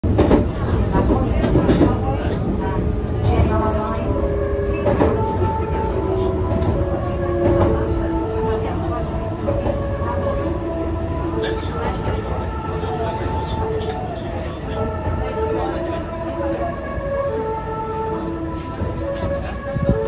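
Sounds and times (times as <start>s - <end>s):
train running rumble: 0.0s - 20.0s
train musical horn melody: 2.8s - 20.0s.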